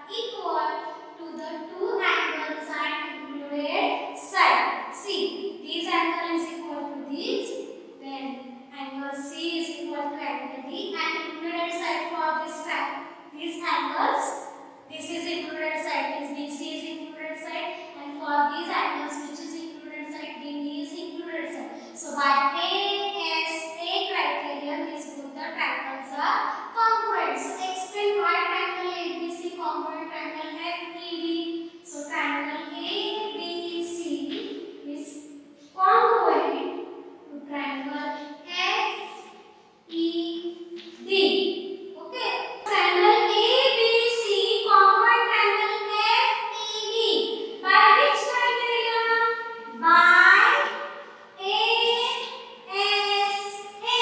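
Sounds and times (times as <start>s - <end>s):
girl singing sing-song tones: 51.4s - 54.0s.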